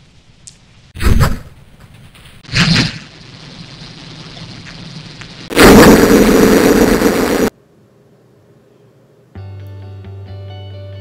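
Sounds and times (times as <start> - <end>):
loud burst of harsh noise: 5.4 - 7.5.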